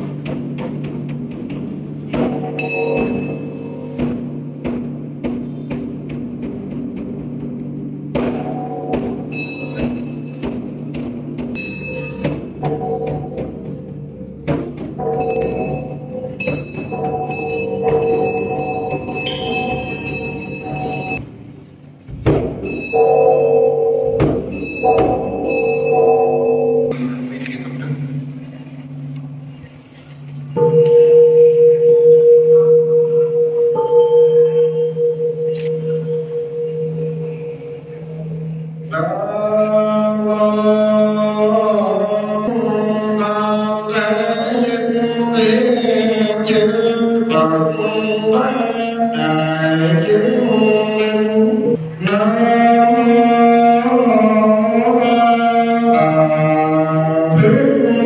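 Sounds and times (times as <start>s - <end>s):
ritual percussion strikes: 0.0s - 58.0s
bronze bowl bell ringing: 2.5s - 4.0s, 9.3s - 10.4s, 11.5s - 13.1s, 15.0s - 21.2s, 22.6s - 27.0s, 28.0s - 39.0s.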